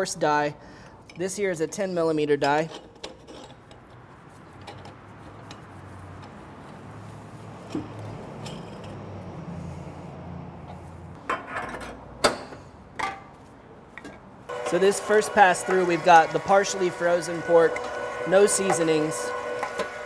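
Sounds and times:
metal parts being handled: 0:01.0 - 0:06.9, 0:07.5 - 0:09.2.

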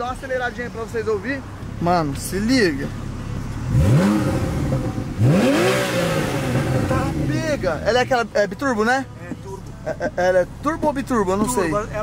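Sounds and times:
car engine revving: 0:00.6 - 0:12.0.

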